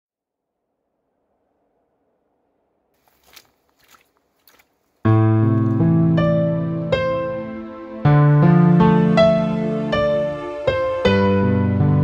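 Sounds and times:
footsteps crunching on dirt: 3.0 - 6.0.

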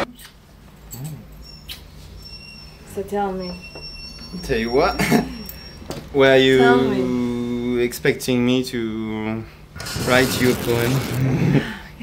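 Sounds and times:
kissing lip smacks: 0.0 - 1.8.

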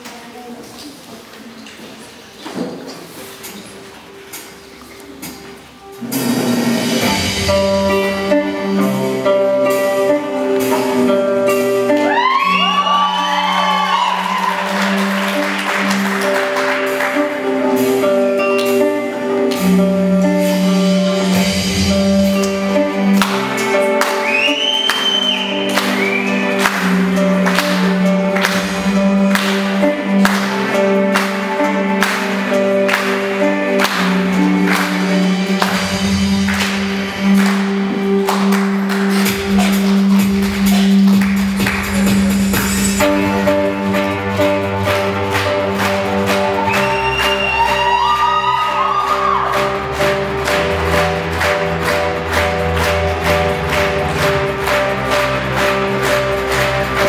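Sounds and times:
steady beat: 5.2 - 57.0
classical guitar playing: 7.5 - 12.1.

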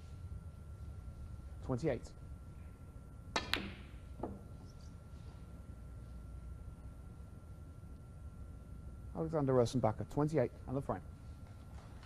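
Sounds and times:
cue tip striking ball: 3.4 - 4.5.

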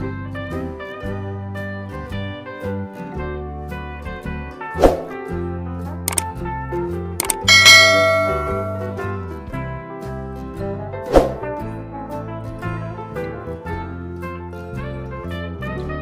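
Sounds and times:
instrumental background music: 0.0 - 16.0
quick clicks: 6.1 - 6.3, 7.2 - 8.9
bell ding: 7.2 - 9.2.

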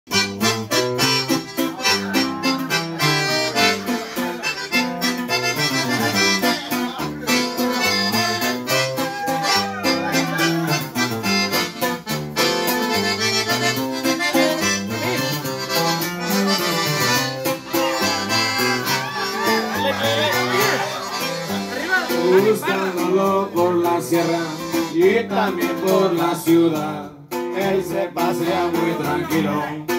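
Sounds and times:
accordion melody: 0.1 - 29.9
strummed acoustic guitar: 0.1 - 29.9.

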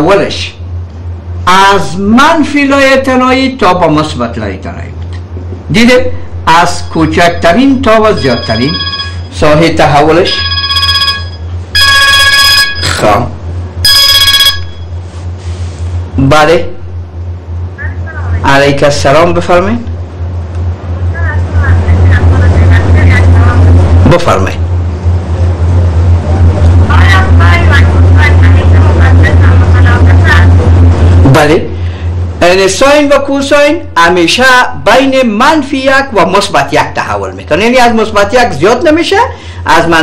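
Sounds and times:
loud low phone line hum: 0.0 - 40.0
electronic telephone ringing: 8.0 - 13.1, 13.8 - 14.9
faint broken caller voice: 17.7 - 18.8, 20.8 - 24.5, 26.2 - 30.8.

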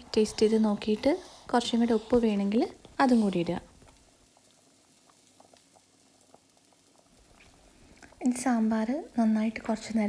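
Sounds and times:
thick stew bubbling in pot: 0.0 - 10.0.

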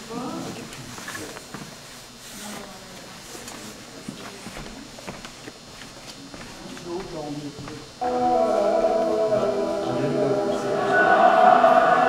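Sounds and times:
faint voices: 6.2 - 12.0.

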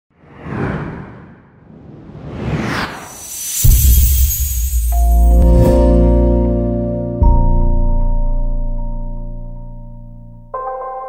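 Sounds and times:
whoosh: 0.1 - 6.0.

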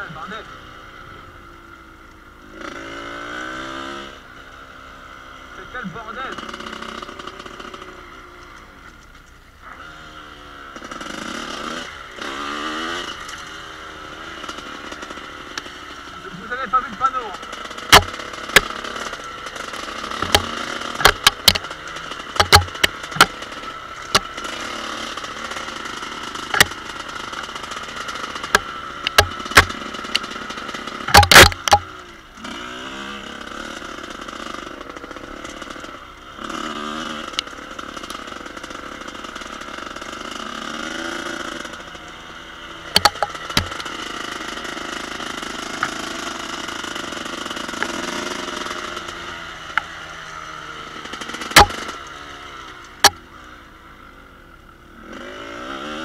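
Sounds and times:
two-stroke motorcycle engine revving: 0.0 - 56.0
sharp knocks and clatter: 17.4 - 32.0, 42.9 - 50.0, 51.1 - 52.0.

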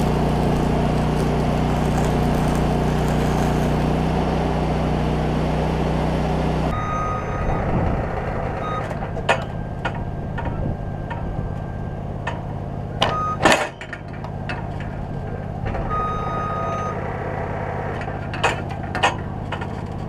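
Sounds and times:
arc welding crackling hiss: 0.0 - 4.1
low motor drone: 0.0 - 8.8.

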